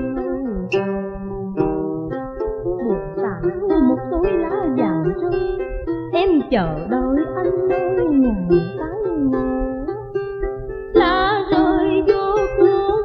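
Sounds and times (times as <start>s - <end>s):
person singing: 0.0s - 10.3s, 10.9s - 13.0s
plucked string music: 0.0s - 13.0s.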